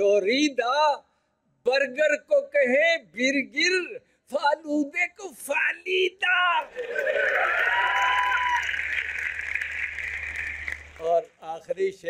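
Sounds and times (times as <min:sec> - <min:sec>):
audience applauding: 0:06.6 - 0:11.4.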